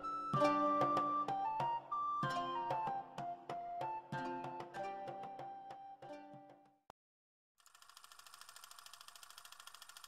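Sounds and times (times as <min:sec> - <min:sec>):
fast camera mechanism clicking: 0:07.6 - 0:10.0.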